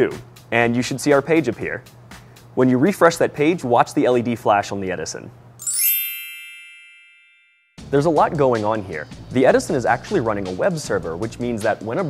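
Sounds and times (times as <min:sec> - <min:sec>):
bright bell-like chime: 0:05.6 - 0:07.8.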